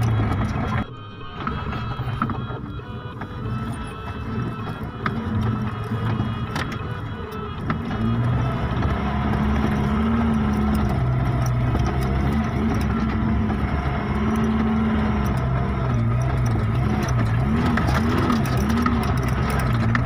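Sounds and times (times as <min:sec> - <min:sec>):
truck engine revving under load: 0:00.0 - 0:20.0
vehicle rattles and knocks: 0:00.0 - 0:20.0.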